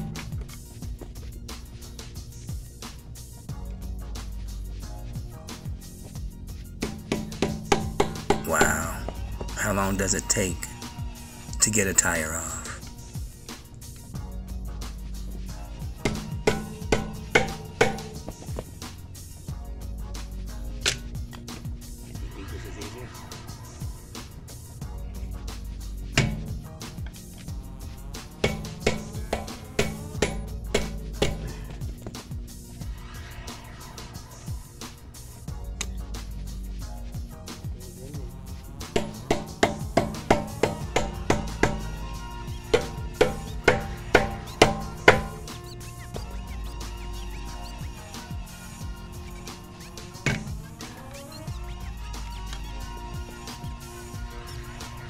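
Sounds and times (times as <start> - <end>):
drum beat: 4.0 - 13.5, 14.2 - 20.4, 24.9 - 32.8, 35.5 - 54.3
hammer striking chisel on metal: 6.8 - 8.9, 16.0 - 18.3, 26.2 - 26.5, 28.4 - 31.8, 39.0 - 42.0, 42.7 - 45.6.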